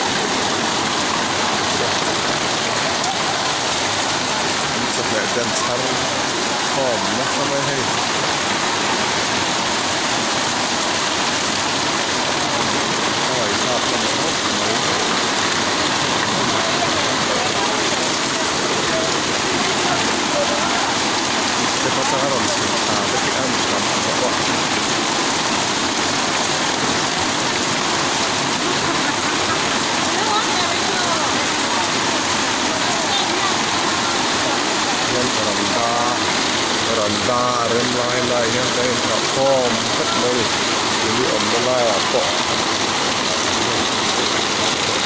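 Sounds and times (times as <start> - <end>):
faint voices: 0.0 - 45.0
floodwater rushing: 0.0 - 45.0
heavy rain pouring: 0.0 - 45.0.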